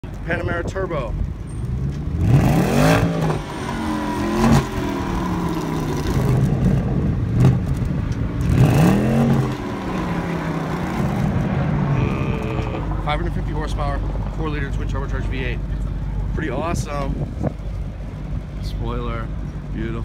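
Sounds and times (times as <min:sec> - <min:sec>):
car exhaust revving: 0:01.7 - 0:14.8
engine idling: 0:12.0 - 0:20.0.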